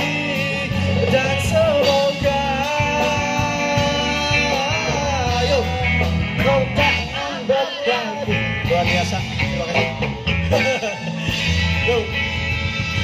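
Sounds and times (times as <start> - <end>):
male singer holding long notes: 0.0 - 12.2
bass: 0.0 - 13.0
drums: 0.0 - 13.0
electric guitars: 0.0 - 13.0.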